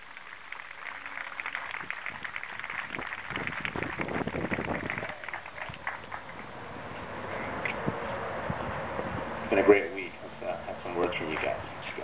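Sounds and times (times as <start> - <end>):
crowd applauding: 0.0 - 6.5.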